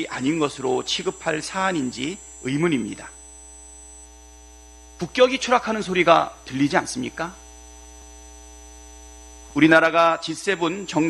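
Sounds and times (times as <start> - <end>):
buzzy electrical mains hum: 0.0 - 11.0.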